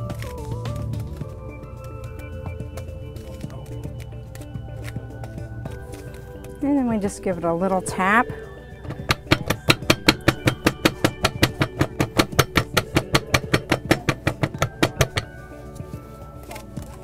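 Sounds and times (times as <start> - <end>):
sharp knocks tapping a machine: 8.8 - 15.4.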